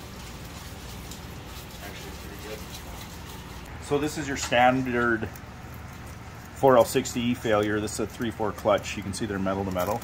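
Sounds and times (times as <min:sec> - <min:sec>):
solvent splashing over metal parts: 0:00.0 - 0:10.0.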